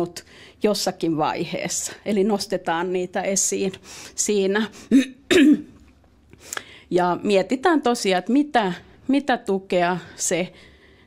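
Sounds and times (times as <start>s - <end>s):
woman clearing throat: 4.9s - 5.8s.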